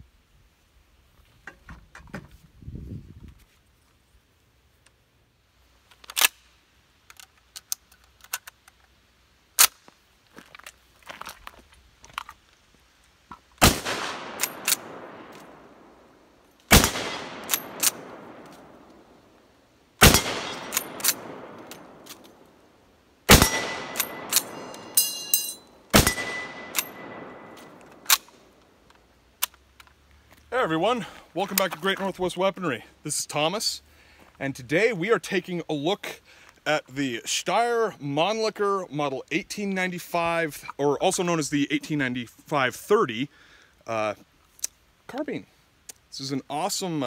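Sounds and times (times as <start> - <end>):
rifle loading clicks: 5.8 - 9.0, 14.3 - 15.6, 16.8 - 19.0, 20.1 - 22.5, 23.4 - 25.0, 26.0 - 30.0
rifle shots with echo: 13.6 - 16.0, 16.7 - 19.2, 20.0 - 22.4, 23.3 - 25.0, 25.9 - 28.6
rifle bolt clacking: 16.8 - 19.0, 20.1 - 22.4, 23.3 - 29.9
short metallic ringing: 23.4 - 27.8.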